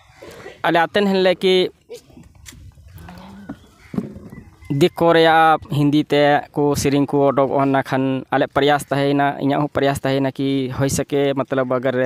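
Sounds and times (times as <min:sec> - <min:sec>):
man speaking into a microphone: 0:00.6 - 0:01.8, 0:04.6 - 0:12.0.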